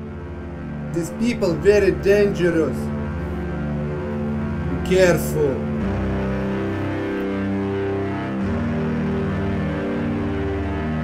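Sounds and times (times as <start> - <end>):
sustained low music chords: 0.0 - 11.0.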